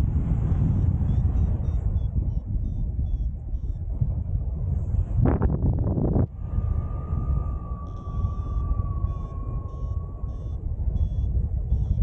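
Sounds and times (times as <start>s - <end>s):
wind rushing over microphone: 0.0s - 12.0s
short high beeps: 0.7s - 3.8s, 9.0s - 12.0s
thin steady tone: 6.3s - 12.0s.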